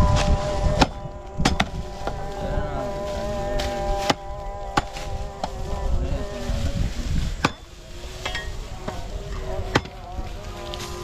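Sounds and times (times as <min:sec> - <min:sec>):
wavering buzz: 0:00.0 - 0:11.0.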